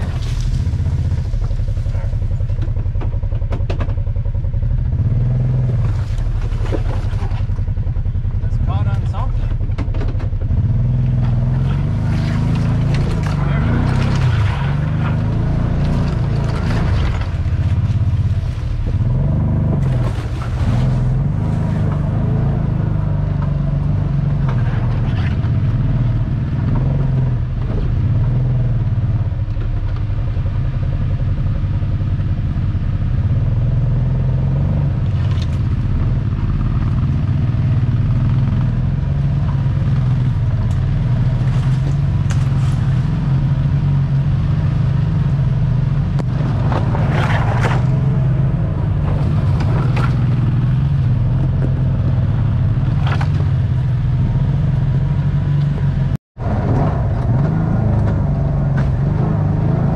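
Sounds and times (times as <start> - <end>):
off-road vehicle engine running: 0.0 - 59.9
vehicle clattering over rocks: 5.6 - 7.8, 9.4 - 22.2, 46.2 - 52.0.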